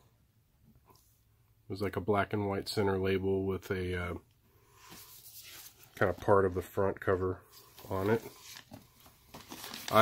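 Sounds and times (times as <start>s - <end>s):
vinyl record sleeve rustling: 4.8s - 10.0s.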